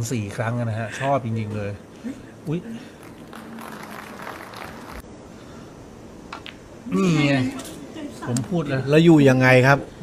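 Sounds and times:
audience applauding: 3.0 - 5.0.

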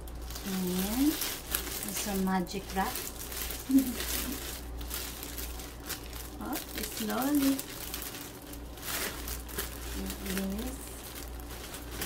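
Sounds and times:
cellophane wrap crinkling: 0.0 - 12.0.

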